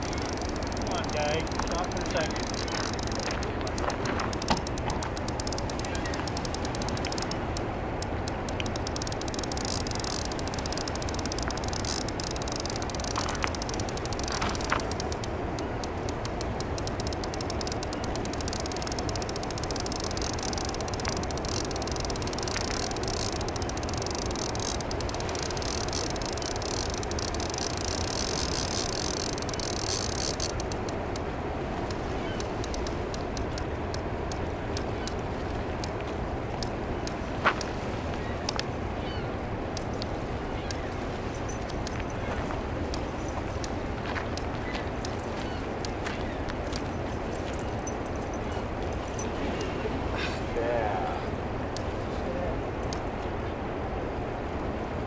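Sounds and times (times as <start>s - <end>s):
faint clicks: 0.0s - 49.3s, 52.8s - 53.3s
turbulent river water rushing: 47.8s - 55.0s.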